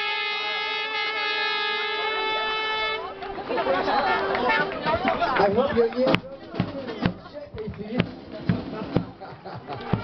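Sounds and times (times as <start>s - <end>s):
crowd voices: 0.0s - 10.0s
marching band playing: 0.0s - 10.0s
sharp drum thumps: 5.5s - 10.0s.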